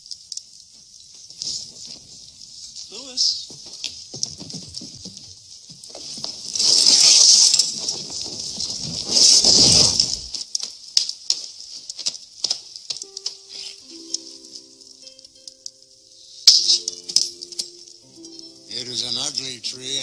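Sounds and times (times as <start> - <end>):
soft music with held notes: 13.0 - 20.0.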